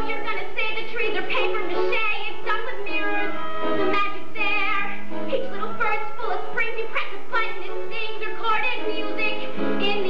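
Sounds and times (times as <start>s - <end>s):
instrumental accompaniment: 0.0s - 10.0s.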